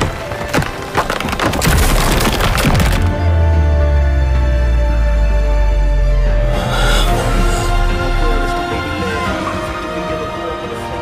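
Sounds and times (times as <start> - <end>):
rapid cracking and splintering: 0.0 - 3.2
music: 0.0 - 11.0
deep low drone: 3.0 - 11.0.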